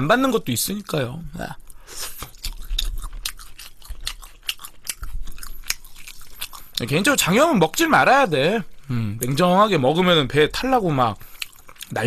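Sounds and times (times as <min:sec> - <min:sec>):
person chewing crunchy fried chicken: 0:01.4 - 0:07.0, 0:11.2 - 0:12.0.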